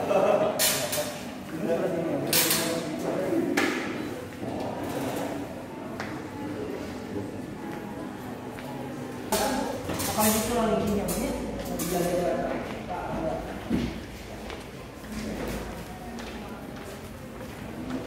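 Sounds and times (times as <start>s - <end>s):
indistinct chatter of voices: 0.0s - 18.0s.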